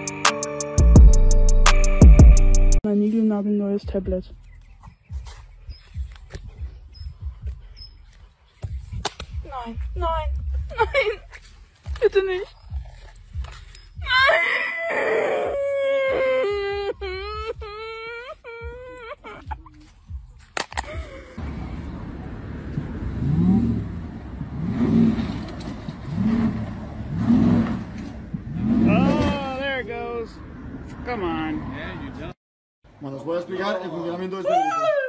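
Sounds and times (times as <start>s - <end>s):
person wailing: 14.1s - 19.7s
steady rumble: 21.1s - 29.8s.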